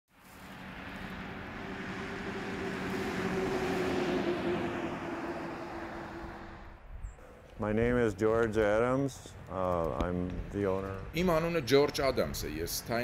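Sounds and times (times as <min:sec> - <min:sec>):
car driving past: 0:00.2 - 0:06.8.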